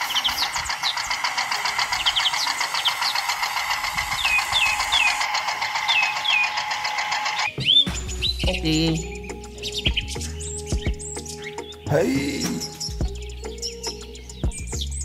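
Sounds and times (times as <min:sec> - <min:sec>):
toy electric motor buzzing: 0:00.0 - 0:07.5
bird-like chirps: 0:00.0 - 0:15.0.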